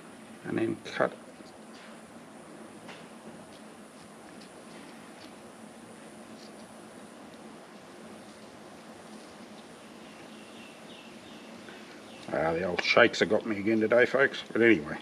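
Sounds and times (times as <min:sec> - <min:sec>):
steady background hiss: 0:00.0 - 0:15.0.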